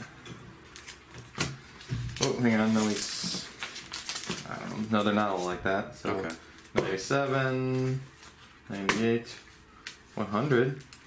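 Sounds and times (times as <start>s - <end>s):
plastic sleeves rustling: 0.6s - 11.0s.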